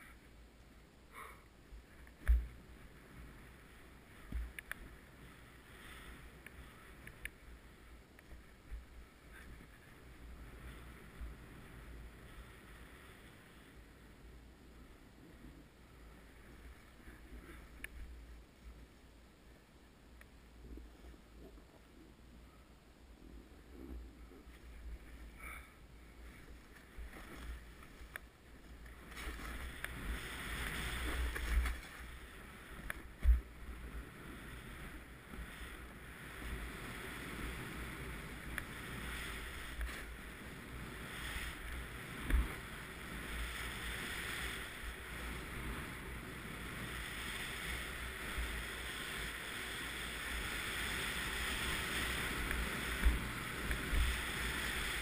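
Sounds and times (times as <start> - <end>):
low wind rumble on microphone: 0.0 - 55.0
skis sliding on snow: 1.8 - 18.9, 23.4 - 55.0
powder snow hissing: 35.6 - 55.0.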